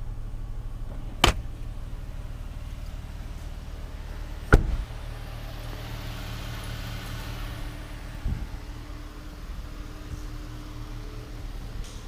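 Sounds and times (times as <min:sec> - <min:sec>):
steady low hum: 0:00.0 - 0:12.0
car door slamming: 0:00.8 - 0:01.6, 0:04.4 - 0:05.0.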